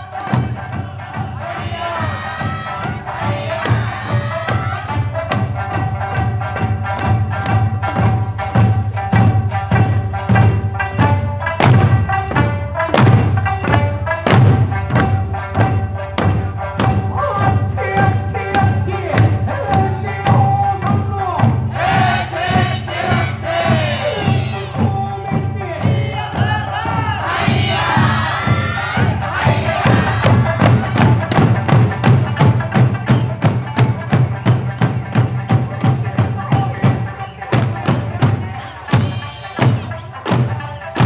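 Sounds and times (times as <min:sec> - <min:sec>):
barrel and hand drums beating: 0:00.0 - 0:41.0
folk melody singing: 0:00.0 - 0:41.0
loud group shouts: 0:26.0 - 0:30.7.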